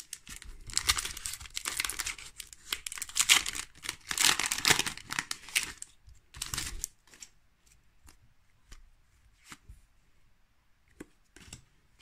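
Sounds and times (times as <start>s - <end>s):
foil wrapper crinkling and tearing: 0.0s - 7.2s.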